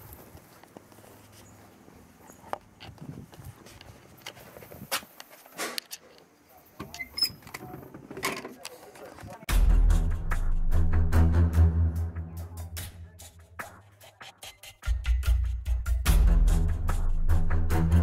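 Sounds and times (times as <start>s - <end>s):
music with steady beat: 9.5s - 18.0s.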